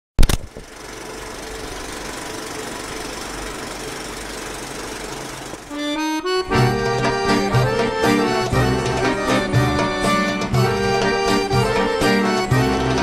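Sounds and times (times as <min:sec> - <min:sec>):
film projector clattering: 0:00.2 - 0:05.7.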